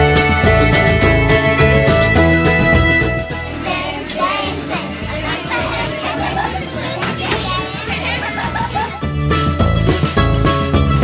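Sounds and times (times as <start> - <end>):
background music with bass: 0.0 - 11.0
children talking and shouting: 1.9 - 10.2.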